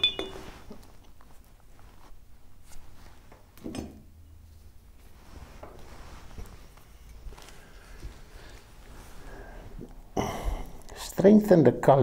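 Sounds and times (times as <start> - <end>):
paintbrush clinking on container: 0.0 - 0.6
brush rubbing and handling: 0.0 - 3.5, 4.5 - 9.4
short rustle: 0.3 - 3.6, 4.5 - 9.7.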